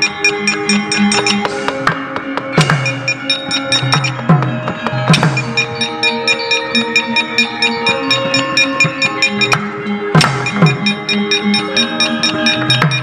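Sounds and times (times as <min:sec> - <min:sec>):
metallophones playing melody: 0:00.0 - 0:13.0.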